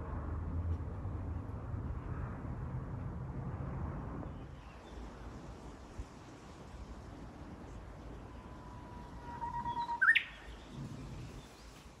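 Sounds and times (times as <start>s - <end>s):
bush warbler singing: 9.3s - 11.9s.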